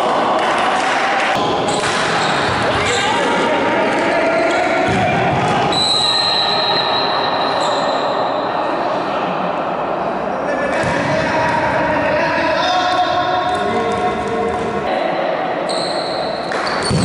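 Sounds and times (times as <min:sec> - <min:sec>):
players calling out: 0:00.0 - 0:15.0.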